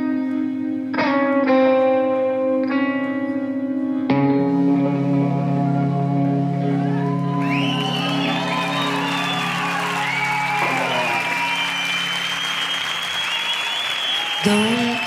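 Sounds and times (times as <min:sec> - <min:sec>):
band chord ringing: 0:04.4 - 0:13.2
audience applauding and cheering: 0:06.6 - 0:15.0.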